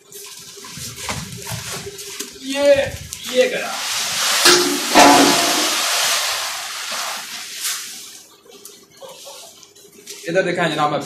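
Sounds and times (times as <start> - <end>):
grain pouring into metal drum: 2.7 - 8.0.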